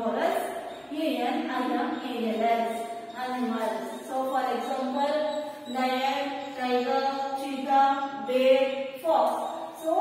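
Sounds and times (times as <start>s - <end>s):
woman chanting: 0.0s - 10.0s.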